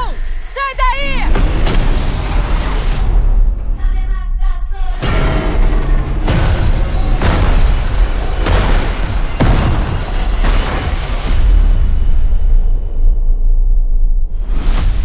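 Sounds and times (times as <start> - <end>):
trailer music: 0.0 - 15.0
heavy explosion booms: 5.0 - 15.0.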